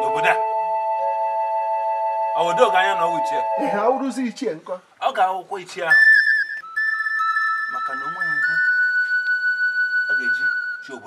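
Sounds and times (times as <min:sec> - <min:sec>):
flute-like whistle music: 0:00.0 - 0:04.0, 0:05.9 - 0:11.0.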